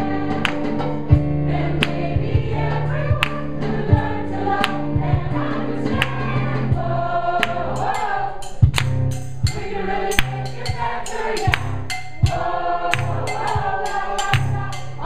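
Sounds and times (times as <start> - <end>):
mixed choir singing: 0.0 - 8.7, 9.4 - 15.0
sharp beat: 0.0 - 15.0.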